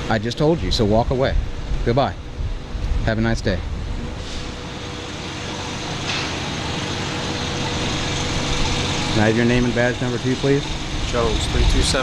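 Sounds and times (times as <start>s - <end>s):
vehicle engine and tyre noise: 0.0s - 12.0s.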